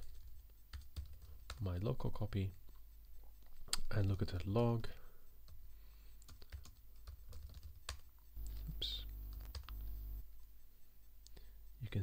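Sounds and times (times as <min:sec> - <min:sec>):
laptop keyboard typing: 0:00.0 - 0:04.5, 0:05.4 - 0:08.7, 0:09.3 - 0:09.9
low hum: 0:08.4 - 0:10.8.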